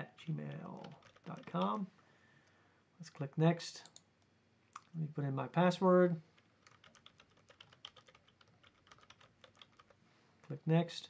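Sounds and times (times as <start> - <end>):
keyboard typing clicks: 0.8 - 1.7, 6.4 - 10.0.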